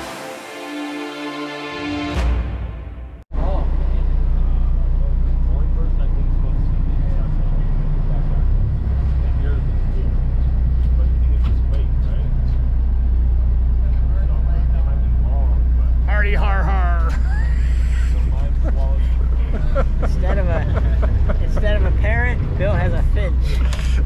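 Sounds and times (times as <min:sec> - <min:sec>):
boat engines droning: 0:03.4 - 0:24.0.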